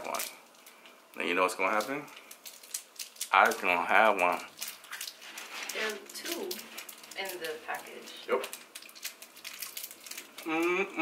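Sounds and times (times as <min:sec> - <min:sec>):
wrapper crinkling: 0:00.0 - 0:10.6
mumbled voice: 0:10.4 - 0:11.0.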